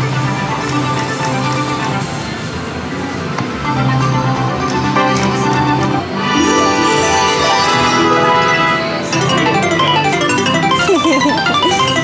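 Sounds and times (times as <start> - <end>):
slot machine electronic music: 0.0 - 2.6, 3.7 - 12.0.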